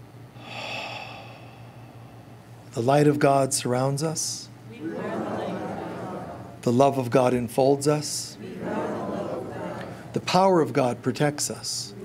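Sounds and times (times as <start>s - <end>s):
man drawing deep breath: 0.4s - 2.5s.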